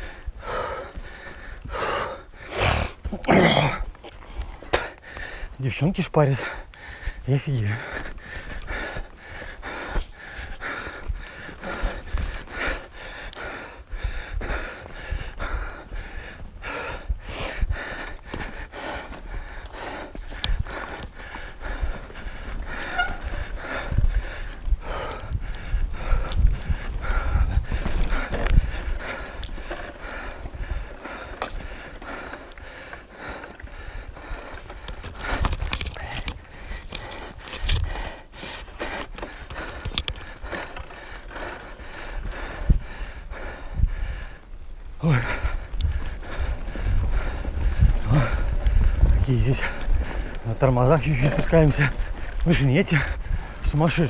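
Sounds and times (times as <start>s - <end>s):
tyres on dirt: 0.0s - 54.0s
wind rumble on microphone: 6.6s - 54.0s
bike rattling and knocking: 17.7s - 44.0s, 45.0s - 54.0s.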